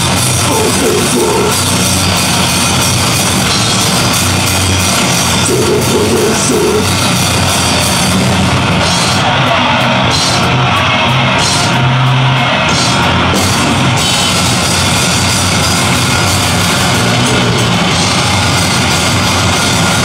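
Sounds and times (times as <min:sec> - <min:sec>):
distorted electric guitar: 0:00.0 - 0:20.0
drum kit: 0:00.0 - 0:20.0.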